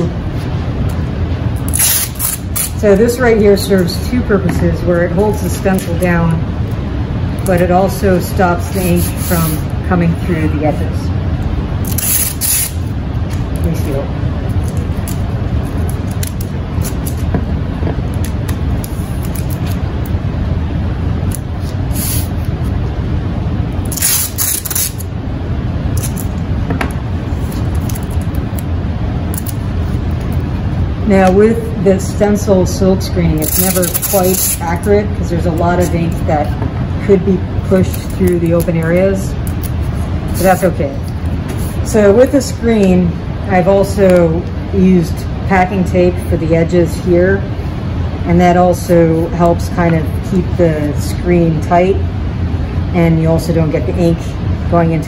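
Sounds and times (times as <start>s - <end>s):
low rumble: 0.0s - 55.0s
masking tape ripping off roll: 1.6s - 2.8s, 11.8s - 12.8s, 23.8s - 25.1s, 33.4s - 34.6s
hands rubbing tape on wood frame: 8.8s - 9.6s, 39.5s - 41.9s.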